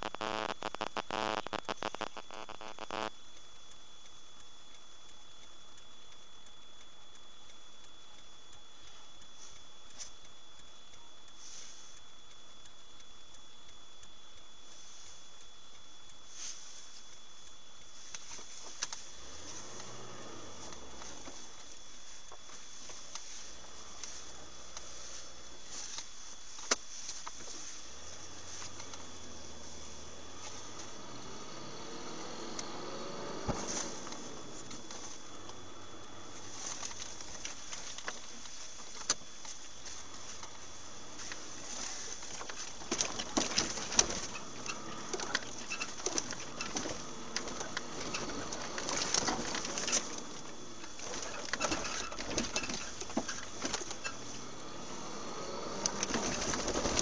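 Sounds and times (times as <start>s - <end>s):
faint ticks: 0.0s - 57.0s
high-pitched whine: 0.0s - 57.0s
low engine hum: 17.9s - 57.0s
vehicle cabin hiss: 17.9s - 57.0s.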